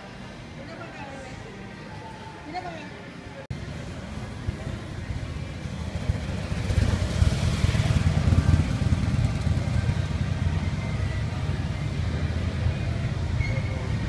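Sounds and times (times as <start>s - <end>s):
motorcycle engine running: 3.6s - 14.0s.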